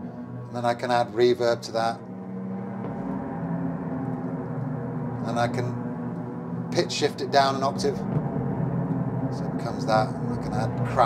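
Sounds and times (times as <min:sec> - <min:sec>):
slowed record low drone: 0:00.0 - 0:11.0.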